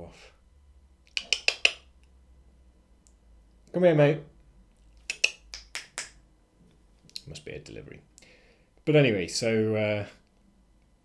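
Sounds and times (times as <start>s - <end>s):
finger snaps: 1.1s - 2.1s, 5.0s - 6.2s.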